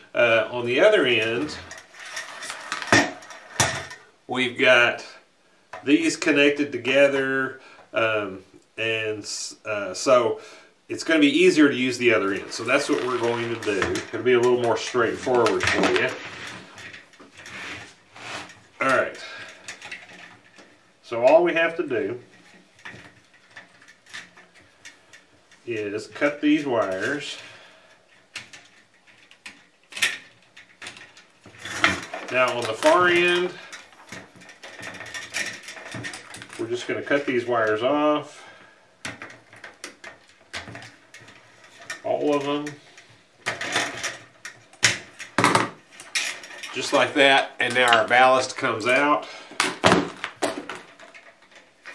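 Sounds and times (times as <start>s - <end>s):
wires rustling: 0.0s - 51.9s.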